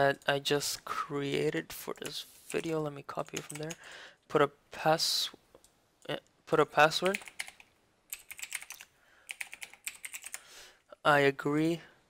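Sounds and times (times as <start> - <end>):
computer keyboard typing: 1.9 - 3.8, 6.9 - 10.4.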